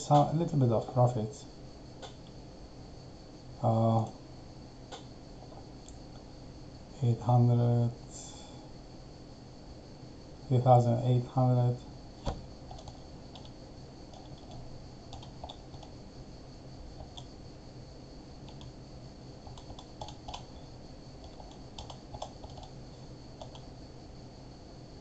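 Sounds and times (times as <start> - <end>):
faint steady hum: 0.0 - 25.0
sharp click: 2.0 - 2.3, 4.9 - 5.1
keyboard keystrokes: 19.5 - 20.5, 21.2 - 22.7.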